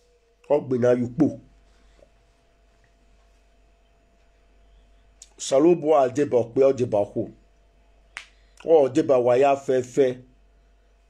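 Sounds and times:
man speaking: 0.5 - 1.4, 5.2 - 7.3, 8.6 - 10.2.

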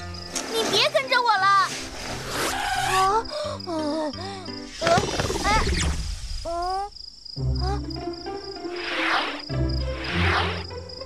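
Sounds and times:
faint background music: 0.0 - 5.8.

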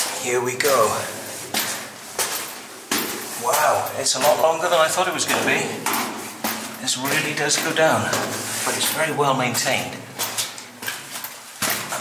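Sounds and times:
footsteps on stone steps: 0.0 - 12.0.

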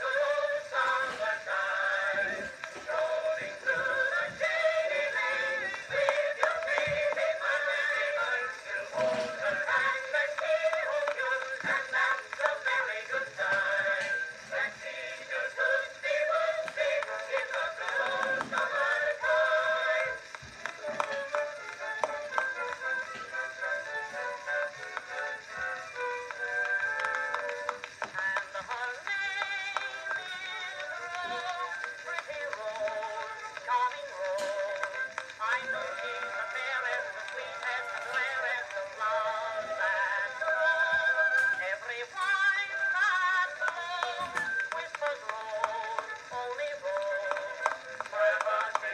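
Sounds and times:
chorus singing on phonograph record: 0.0 - 48.9.

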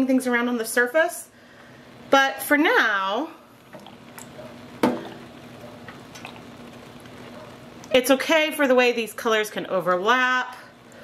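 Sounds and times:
soft liquid sounds: 3.5 - 8.0.

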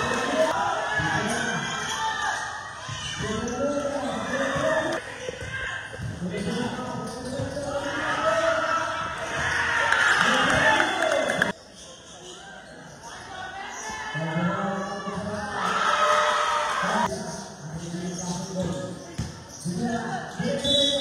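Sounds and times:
spectators shouting and cheering: 0.0 - 5.9, 7.7 - 11.5, 13.3 - 17.1
basketball bouncing on court: 4.5 - 7.7, 18.6 - 19.4.

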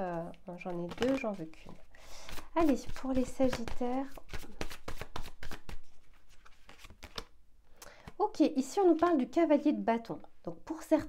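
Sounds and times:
cards being shuffled: 0.1 - 7.3.

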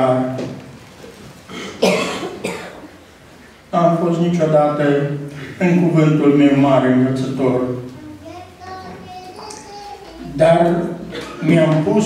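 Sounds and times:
man coughing: 1.5 - 2.9, 11.1 - 11.6.

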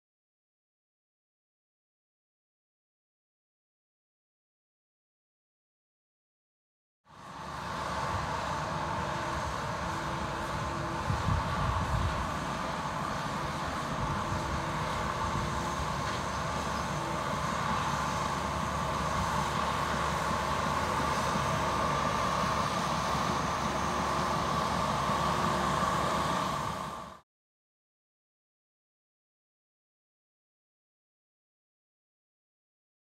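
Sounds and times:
dozer diesel engine running: 7.1 - 27.2.

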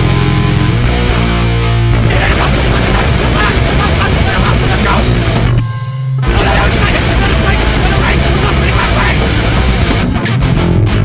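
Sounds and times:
distorted metal music: 0.0 - 11.0
harsh shouted vocals: 2.0 - 5.6, 6.3 - 10.1.

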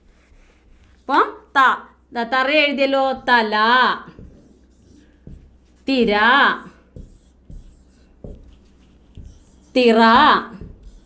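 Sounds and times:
marker strokes on whiteboard: 0.0 - 1.2, 3.0 - 11.0
marker tapping on whiteboard: 4.1 - 5.8, 6.9 - 11.0.

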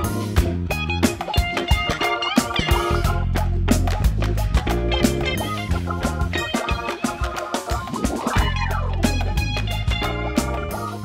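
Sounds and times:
electric guitar: 0.0 - 11.0
instrumental band music: 0.0 - 11.0.

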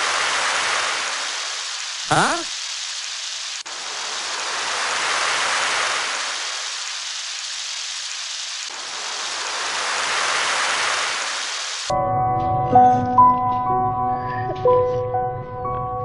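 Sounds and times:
steady hiss: 0.0 - 11.9.

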